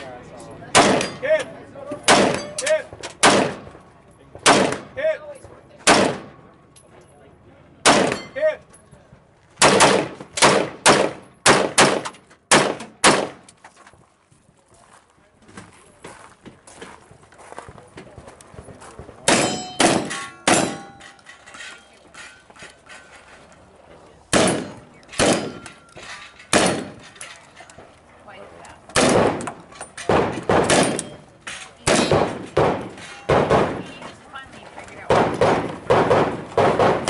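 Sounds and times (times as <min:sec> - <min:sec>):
gunshots: 0:00.7 - 0:01.2, 0:02.1 - 0:02.6, 0:03.2 - 0:03.7, 0:04.4 - 0:05.0, 0:05.8 - 0:06.4, 0:07.8 - 0:08.3, 0:09.6 - 0:13.4, 0:19.2 - 0:21.0, 0:24.3 - 0:25.8, 0:26.5 - 0:27.1, 0:28.9 - 0:31.2, 0:31.8 - 0:34.0, 0:35.1 - 0:37.0
shotgun hitting steel targets: 0:00.7 - 0:03.7, 0:04.4 - 0:05.1, 0:05.8 - 0:06.4, 0:07.8 - 0:08.6, 0:09.6 - 0:13.5, 0:19.2 - 0:21.8, 0:24.3 - 0:27.4, 0:28.9 - 0:34.0, 0:35.0 - 0:37.0.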